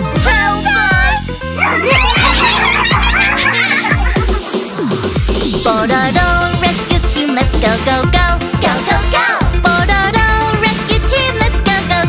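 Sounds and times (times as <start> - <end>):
electronic children's song: 0.0 - 12.0
steady deep beat: 3.9 - 6.6.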